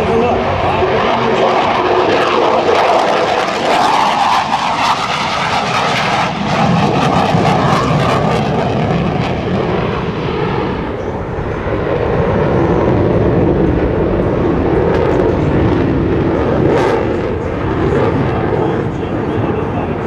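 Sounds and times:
jet engine roar: 0:00.0 - 0:20.0.

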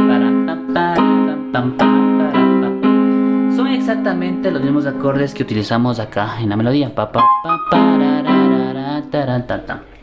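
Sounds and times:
electronic keyboard playing: 0:00.0 - 0:05.8, 0:07.2 - 0:09.1.

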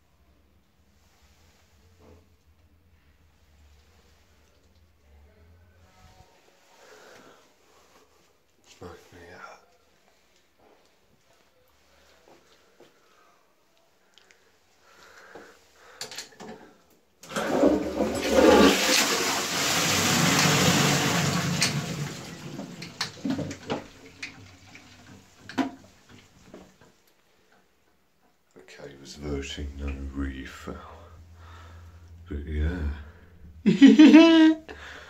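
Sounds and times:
water rushing into toilet bowl: 0:17.2 - 0:26.6
water trickling and dripping: 0:22.8 - 0:26.6.

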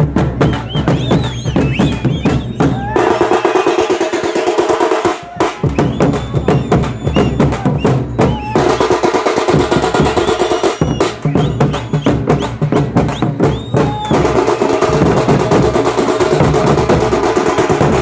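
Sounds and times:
large drums beaten with sticks: 0:00.0 - 0:18.0.

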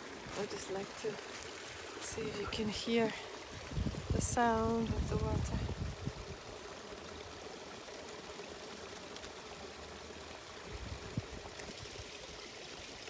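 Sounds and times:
brook running water: 0:00.0 - 0:13.0.

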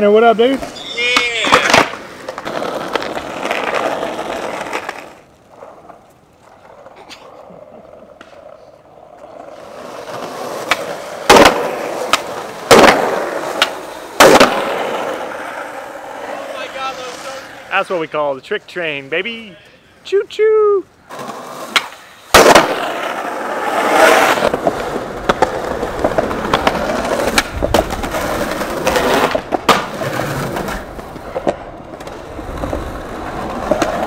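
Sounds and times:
skateboard wheels rolling on pavement: 0:00.0 - 0:34.0
sharp skateboard impacts: 0:00.6 - 0:06.0, 0:09.5 - 0:17.6, 0:21.1 - 0:34.0.

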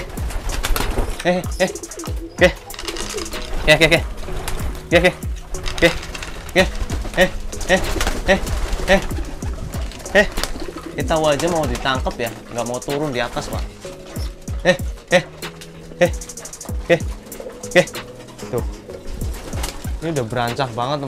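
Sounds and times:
pigeons cooing: 0:00.0 - 0:21.0.

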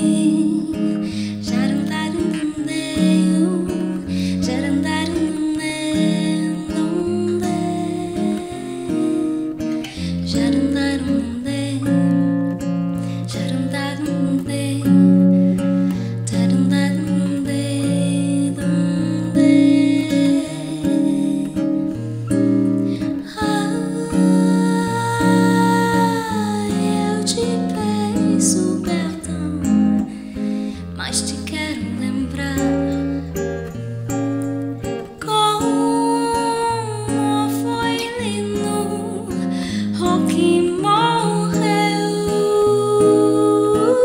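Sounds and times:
woman singing wordless notes: 0:00.0 - 0:33.3, 0:35.1 - 0:44.0
acoustic guitar bossa nova: 0:00.0 - 0:44.0.

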